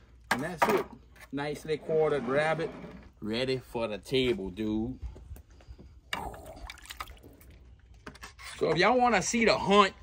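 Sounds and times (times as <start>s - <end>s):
water sloshing and dripping in a bowl: 6.2s - 7.9s.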